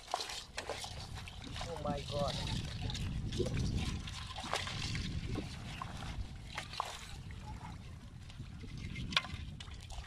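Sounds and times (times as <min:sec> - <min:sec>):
wet splashing in water: 0:00.0 - 0:07.2.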